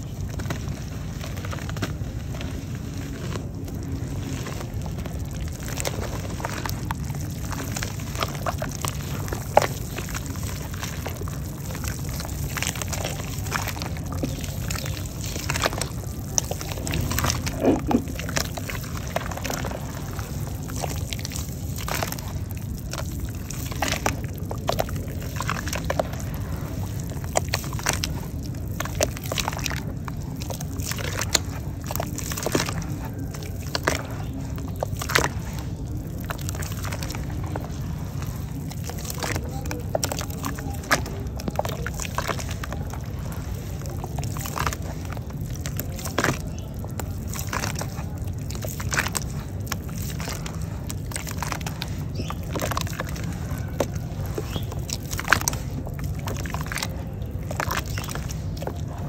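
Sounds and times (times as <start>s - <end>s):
low background hum: 0.0s - 59.0s
small splats and pops: 0.0s - 59.0s
wet mud squelching and sloshing: 0.0s - 59.0s.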